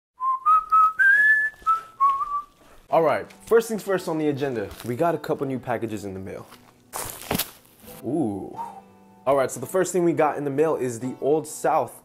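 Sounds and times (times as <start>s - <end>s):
man whistling a tune: 0.2s - 2.5s, 8.4s - 8.9s.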